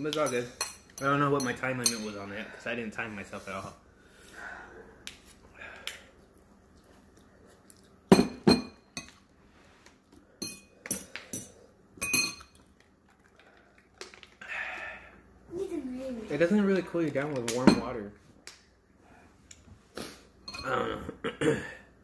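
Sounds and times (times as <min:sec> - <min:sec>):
tableware clinking: 0:08.1 - 0:09.2, 0:10.4 - 0:12.5.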